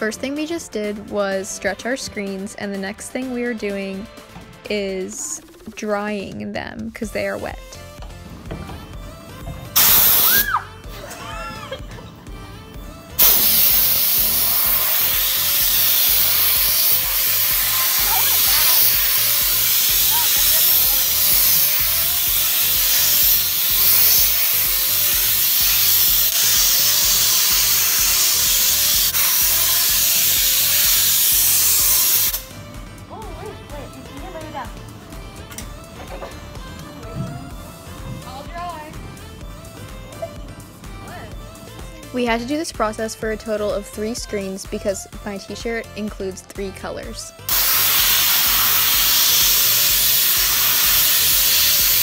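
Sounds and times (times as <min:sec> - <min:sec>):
compressed air blow gun hissing: 0:09.2 - 0:10.7, 0:13.2 - 0:32.6, 0:47.5 - 0:52.0.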